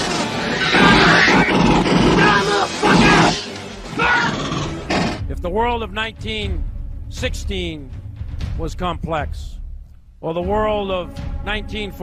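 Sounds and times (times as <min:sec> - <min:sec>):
music: 0:00.0 - 0:12.0
wordless voice-like cries: 0:00.5 - 0:04.8.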